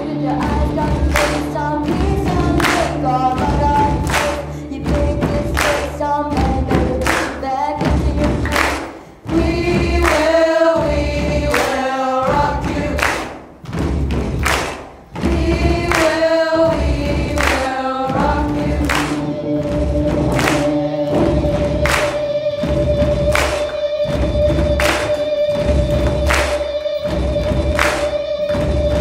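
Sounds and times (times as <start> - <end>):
rock band with heavy beat: 0.0 - 5.7, 7.8 - 29.0
young voices singing a rock song: 0.0 - 13.4, 15.2 - 24.9
hand claps: 0.3 - 29.0.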